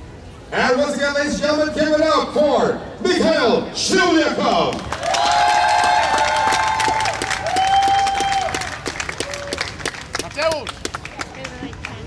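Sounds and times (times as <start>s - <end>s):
crowd applauding and cheering: 4.7s - 11.9s.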